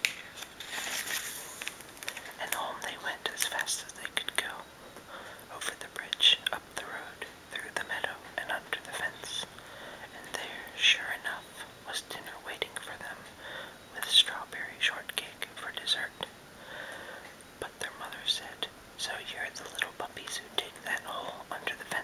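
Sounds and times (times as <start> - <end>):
man whispering: 2.3 - 16.3, 17.6 - 22.0.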